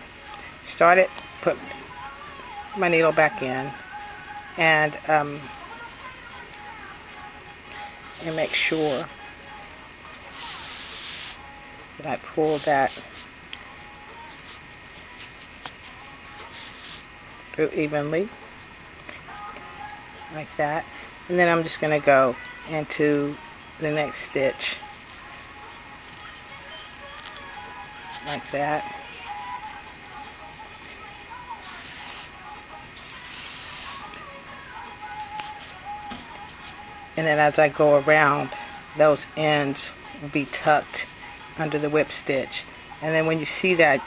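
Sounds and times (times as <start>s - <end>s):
yarn swishing through stitches: 8.2s - 9.0s, 12.3s - 13.3s, 31.6s - 32.4s.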